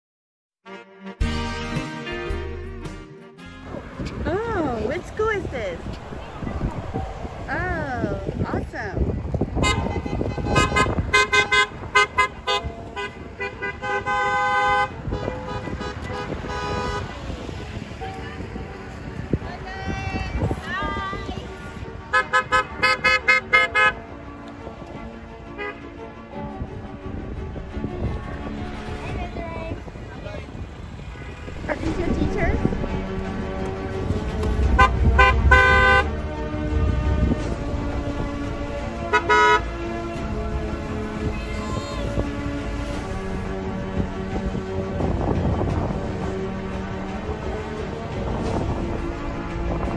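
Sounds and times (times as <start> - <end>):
low rumble of passing cars: 3.6 - 49.9
car horns honking: 9.6 - 17.4, 22.1 - 24.0, 30.8 - 32.5, 33.9 - 37.9, 38.9 - 40.3.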